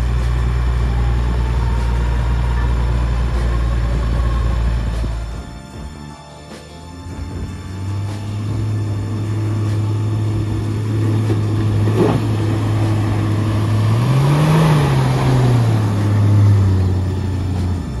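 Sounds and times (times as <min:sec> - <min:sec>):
vehicle engine pulling through mud: 0:00.0 - 0:05.5, 0:07.2 - 0:18.0.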